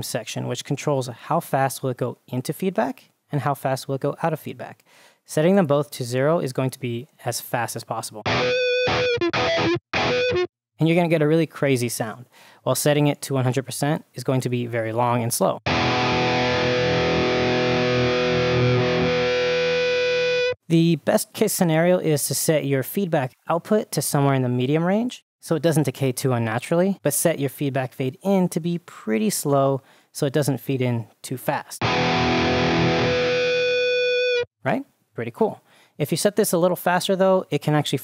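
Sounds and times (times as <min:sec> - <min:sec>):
distorted electric guitar strum: 0:08.3 - 0:10.5, 0:15.7 - 0:20.6, 0:31.8 - 0:34.5
guitar feedback tone: 0:08.3 - 0:10.5, 0:15.7 - 0:20.6, 0:31.8 - 0:34.5.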